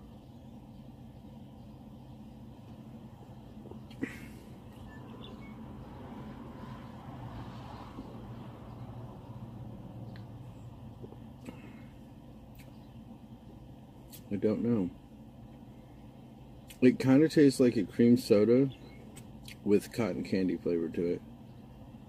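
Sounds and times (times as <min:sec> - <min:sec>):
idling vehicle hum: 0:00.0 - 0:22.0.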